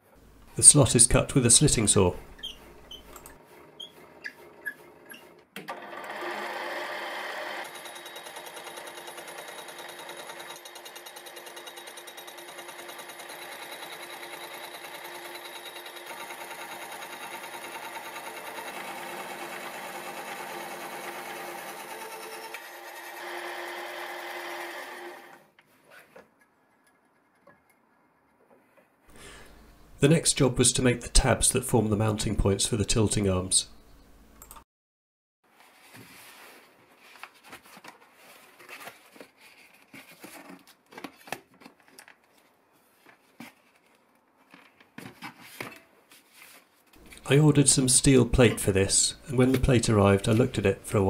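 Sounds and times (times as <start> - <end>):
milling machine sawing steel tube: 5.8 - 25.4.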